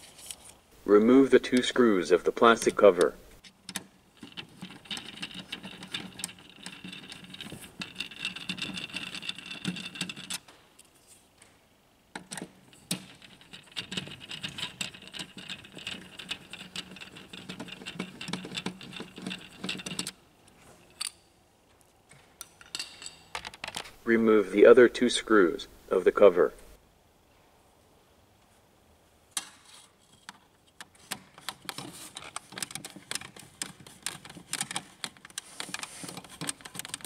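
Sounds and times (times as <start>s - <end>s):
screwdriver clicking and scraping: 29.6s - 37.0s.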